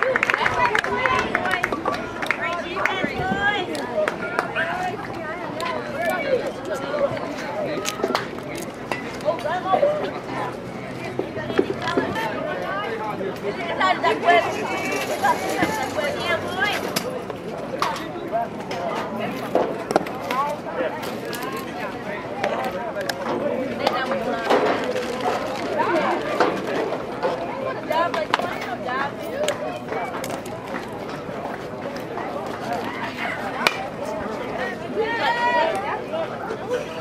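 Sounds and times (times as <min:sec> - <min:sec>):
spectators talking: 0:00.0 - 0:37.0.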